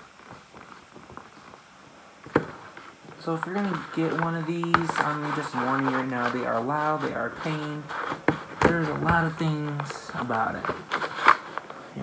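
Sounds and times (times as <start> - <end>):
light rustling: 0.0 - 12.0.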